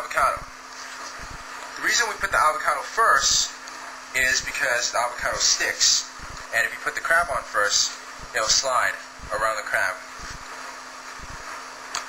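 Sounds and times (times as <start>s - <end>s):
faint low hum: 0.0s - 11.6s
steady background hiss: 0.0s - 12.0s.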